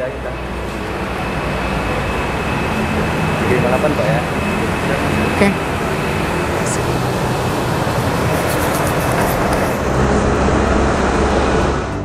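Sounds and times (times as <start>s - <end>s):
loud rumble and hiss: 0.0s - 12.0s.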